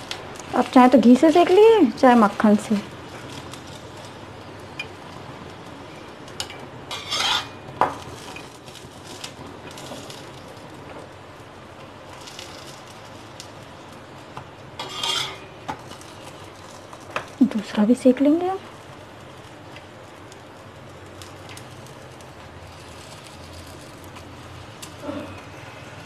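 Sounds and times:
steady sizzle: 0:00.0 - 0:26.0
metal spatula scraping a griddle: 0:06.4 - 0:10.2, 0:14.8 - 0:16.6.

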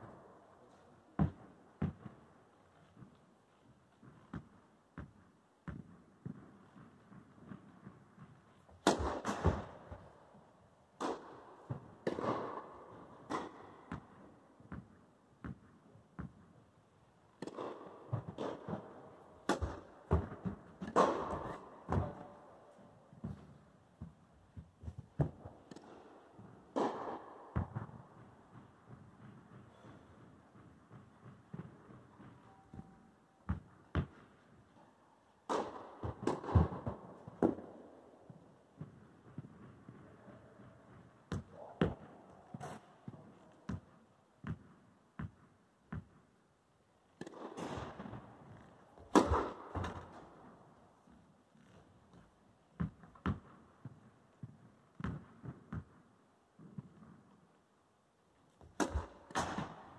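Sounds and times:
tennis balls struck by rackets: 0:01.2 - 0:03.1, 0:04.0 - 0:10.4, 0:11.0 - 0:16.5, 0:17.3 - 0:32.8, 0:33.4 - 0:34.7, 0:35.4 - 0:46.3, 0:47.2 - 0:50.6, 0:52.8 - 0:57.3, 0:58.6 - 0:59.9
tennis balls bouncing on court: 0:01.2 - 0:03.2, 0:03.9 - 0:10.4, 0:11.0 - 0:16.6, 0:17.3 - 0:22.4, 0:23.1 - 0:34.7, 0:35.4 - 0:46.3, 0:47.2 - 0:57.4, 0:58.6 - 0:59.9.

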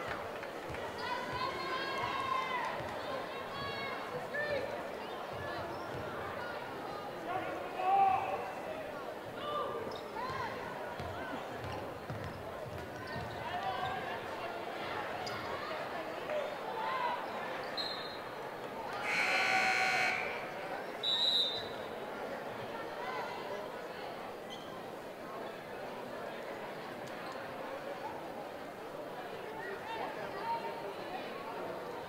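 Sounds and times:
chatter: 0:00.0 - 0:32.0
scoreboard horn: 0:19.0 - 0:20.5
whistle blowing: 0:19.0 - 0:21.8.

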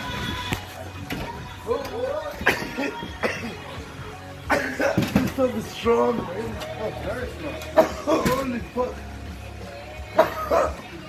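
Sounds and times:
faint background music: 0:00.0 - 0:11.0
person coughing hard: 0:02.4 - 0:03.6, 0:04.5 - 0:05.2, 0:07.8 - 0:08.6, 0:10.2 - 0:10.9.

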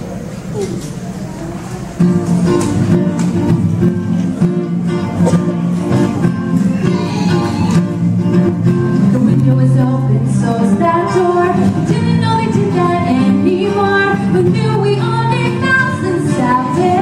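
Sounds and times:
acoustic guitar playing: 0:01.0 - 0:17.0
woman singing into microphone: 0:09.1 - 0:17.0.

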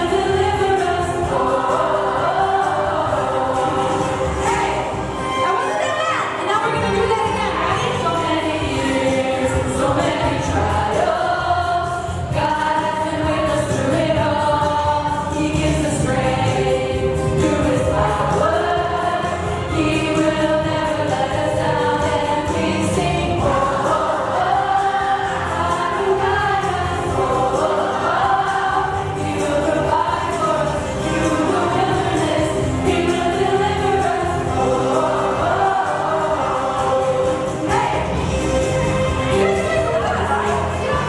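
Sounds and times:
instrumental accompaniment: 0:00.0 - 0:41.0
women singing worship song: 0:00.0 - 0:41.0.

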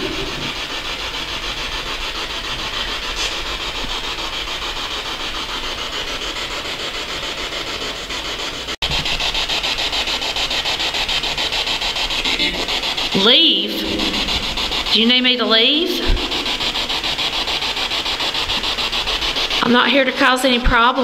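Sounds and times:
pulsing radio static hiss: 0:00.0 - 0:21.0.

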